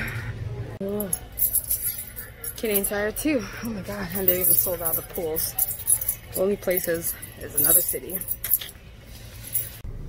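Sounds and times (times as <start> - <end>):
light metallic jingles: 0.8 - 9.8.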